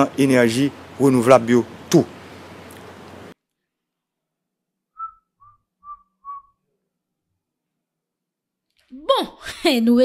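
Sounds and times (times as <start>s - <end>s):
short whistled notes: 4.9s - 6.6s.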